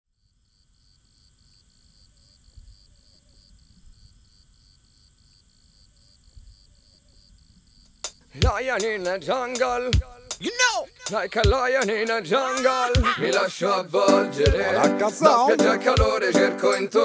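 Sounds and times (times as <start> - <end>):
insects chirping: 0.1 - 14.0.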